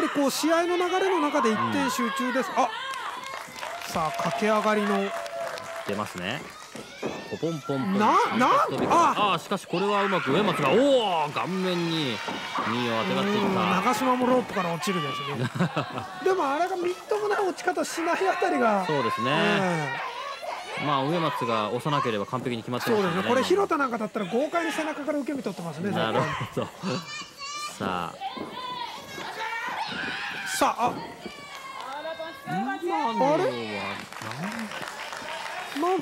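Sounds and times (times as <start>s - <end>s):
high-pitched shouts and yells: 0.0s - 5.5s, 6.5s - 23.6s, 25.8s - 34.0s.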